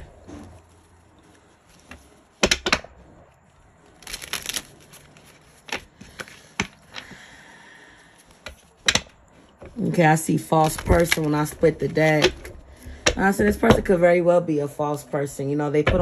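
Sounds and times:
cards being shuffled: 0.0 - 13.8.

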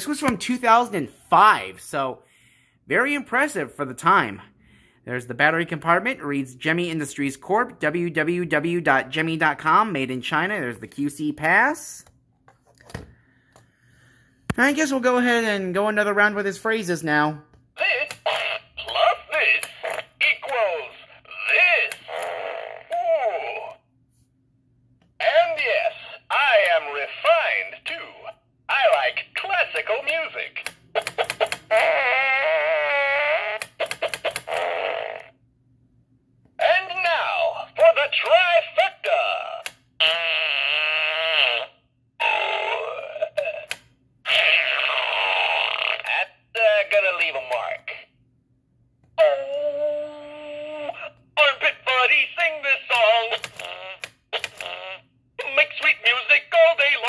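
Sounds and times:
comic man's voice through speaker: 5.1 - 12.0, 14.5 - 22.1, 25.2 - 30.7, 36.6 - 39.6, 46.1 - 48.1, 51.4 - 53.6, 55.4 - 57.0
tinny toy voice phrases: 14.8 - 23.9, 25.2 - 35.2, 36.6 - 48.2, 49.2 - 57.0
fart sounds: 18.3 - 18.8, 21.5 - 23.0, 31.5 - 35.4, 40.0 - 43.7, 44.3 - 46.3, 53.5 - 55.1.

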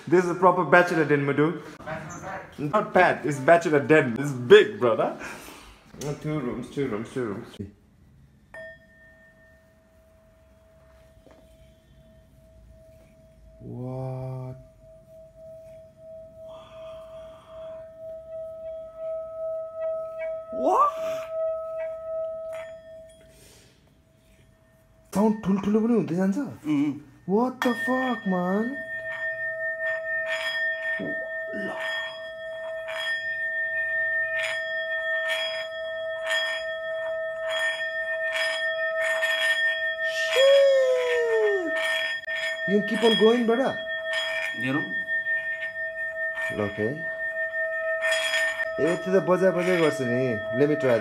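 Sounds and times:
singing bowl ringing tone: 8.3 - 51.0
mallet rasping on rim: 8.6 - 26.6, 27.3 - 51.0
howl-like wail: 40.1 - 41.8.

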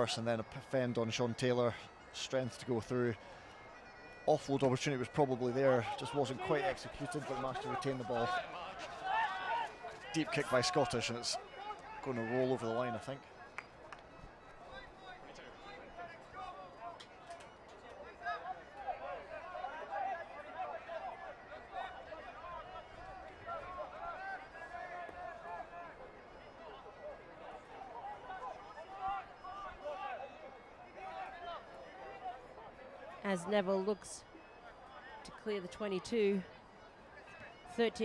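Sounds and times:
distant crowd shouts and chatter: 0.0 - 38.0.

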